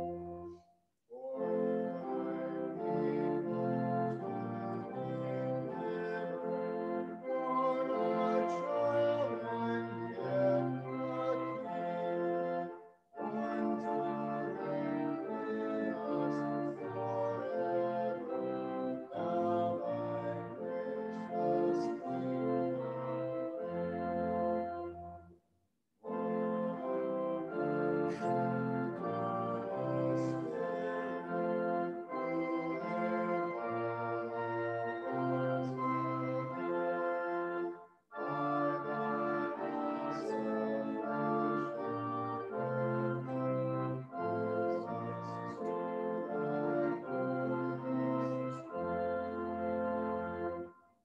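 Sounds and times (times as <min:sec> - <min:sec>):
organ playing slow chords: 0:00.0 - 0:00.6, 0:01.2 - 0:25.3, 0:26.0 - 0:50.8.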